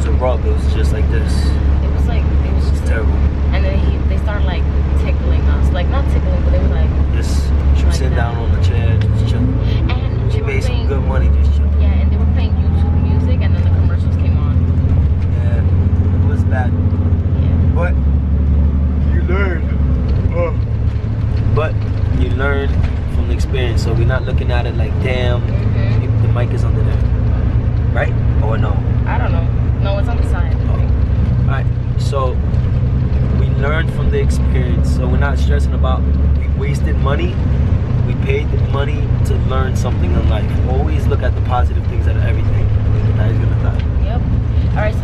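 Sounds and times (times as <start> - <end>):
bus engine and road drone: 0.0 - 45.0.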